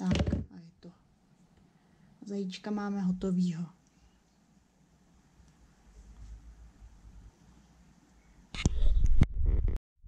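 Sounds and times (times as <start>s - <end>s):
camera handling bumps and knocks: 0.0s - 0.5s.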